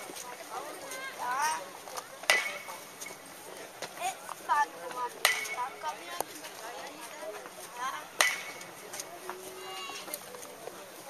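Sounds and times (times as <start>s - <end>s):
bat cracking a baseball: 2.3s - 2.8s, 5.2s - 5.8s, 8.2s - 8.8s.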